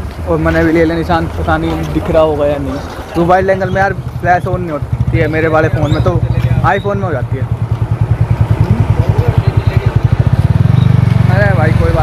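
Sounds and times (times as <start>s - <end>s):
engine running: 0.0s - 12.0s.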